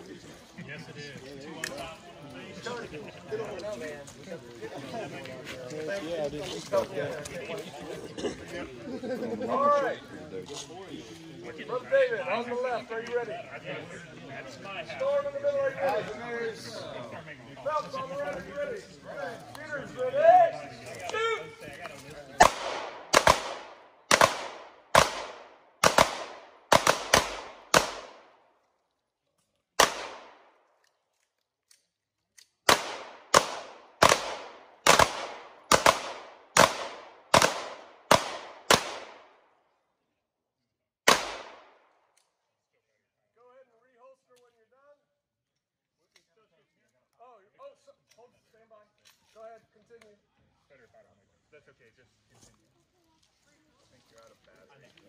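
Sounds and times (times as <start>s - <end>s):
pistol shots echoing: 22.4s - 28.4s, 29.8s - 30.6s, 32.7s - 39.4s, 41.1s - 41.8s.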